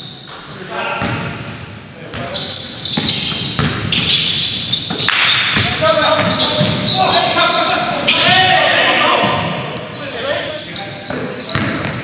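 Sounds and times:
basketball bouncing on hardwood floor: 3.0s - 3.9s, 11.1s - 12.0s
players calling out: 4.0s - 11.8s.

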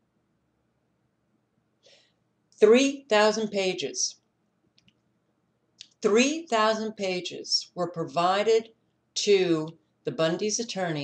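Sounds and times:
woman speaking: 2.6s - 4.2s, 5.8s - 11.0s.

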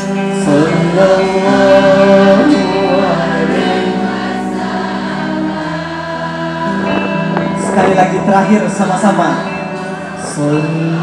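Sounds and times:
choir singing devotional song: 0.0s - 11.0s.

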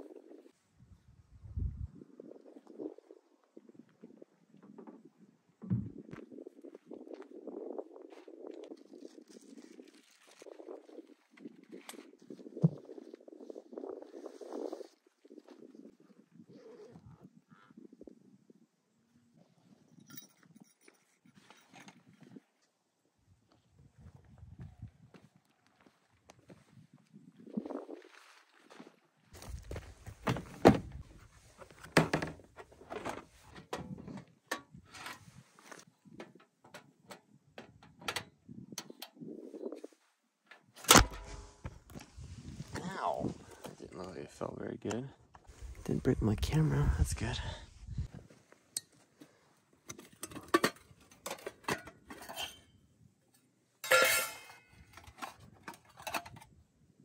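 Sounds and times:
camping gear knocking and clattering: 20.0s - 22.4s, 29.4s - 39.4s, 47.9s - 52.7s, 53.8s - 56.6s.

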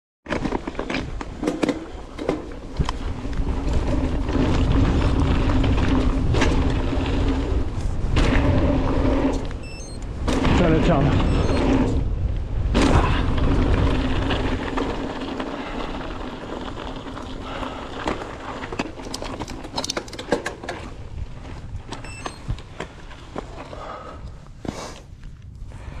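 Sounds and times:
tyres rolling over loose stones: 0.3s - 9.3s, 12.6s - 23.7s
rattles and clicks of bike chain: 13.3s - 22.4s.

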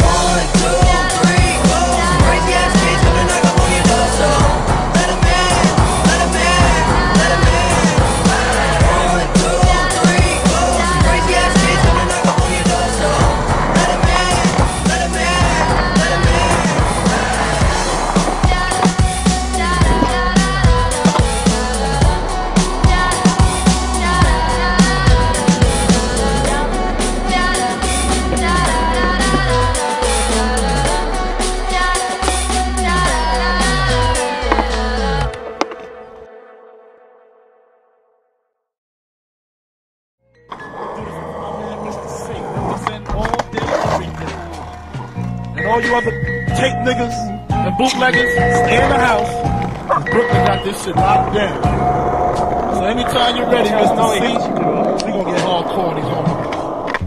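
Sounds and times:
music with deep bass beat: 0.0s - 35.4s
skateboard wheels rolling: 9.4s - 35.9s, 41.6s - 45.3s, 48.5s - 57.0s.

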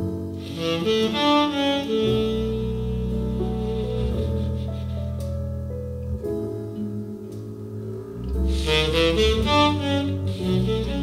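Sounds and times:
jazz ballad on saxophone and piano: 0.0s - 11.0s
low bass notes: 0.0s - 11.0s.

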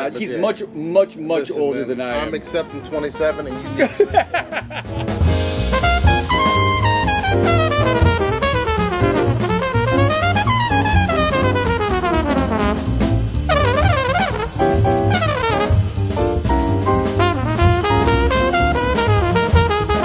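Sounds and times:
jazz trumpet soloing: 2.1s - 4.4s, 5.0s - 20.0s
drum kit: 2.4s - 20.0s
walking bass line: 3.3s - 20.0s.

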